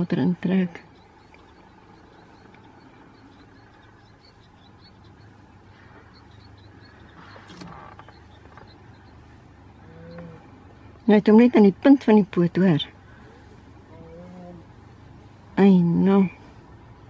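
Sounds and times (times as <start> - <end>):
high bird chirps: 0.0 - 13.3
low steady hum: 0.0 - 17.0.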